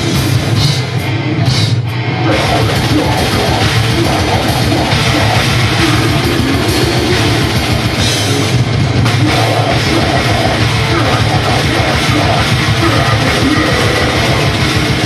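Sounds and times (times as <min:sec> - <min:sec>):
distorted electric guitar riffing: 0:00.0 - 0:15.0
heavy metal band playing: 0:00.0 - 0:15.0.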